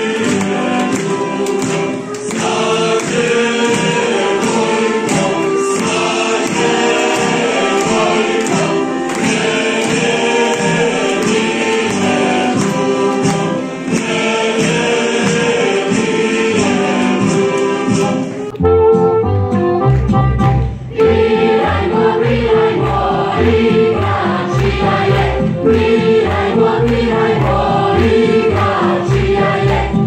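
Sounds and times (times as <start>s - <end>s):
children singing folk song: 0.0s - 18.6s, 20.5s - 30.0s
accordion: 0.0s - 30.0s.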